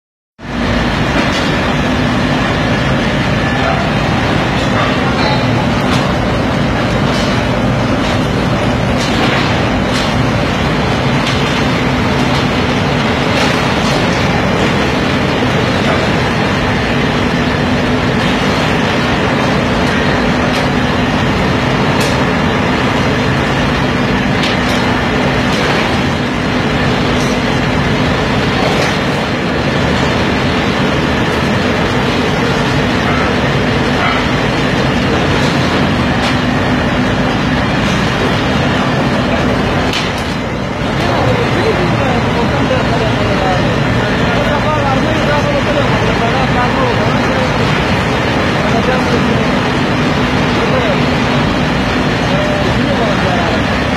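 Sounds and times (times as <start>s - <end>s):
constant machinery hum: 0.4s - 53.9s
steel mill machinery din: 0.4s - 53.9s.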